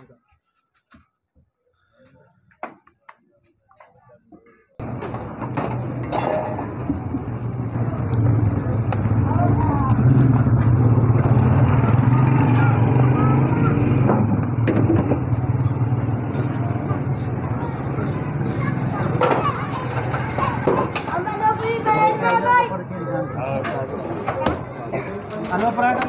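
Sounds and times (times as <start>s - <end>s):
voices talking: 1.7s - 26.0s
engine running: 4.8s - 21.0s.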